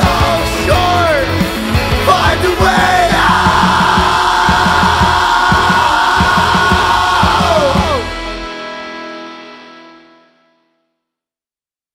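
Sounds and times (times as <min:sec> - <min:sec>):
pounding drums: 0:00.0 - 0:08.5
rock band playing loudly: 0:00.0 - 0:09.8
electric guitars ringing: 0:00.0 - 0:10.5.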